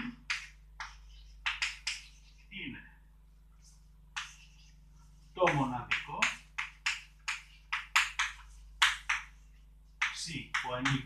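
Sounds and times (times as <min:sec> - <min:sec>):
chalk writing on blackboard: 0:00.8 - 0:02.5, 0:03.6 - 0:05.4.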